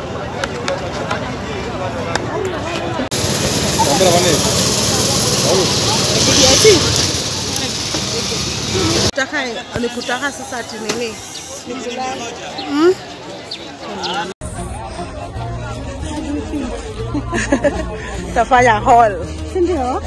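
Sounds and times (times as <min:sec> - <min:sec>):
market chatter: 0:00.0 - 0:20.0
loud steady hiss of roasting: 0:03.1 - 0:09.1.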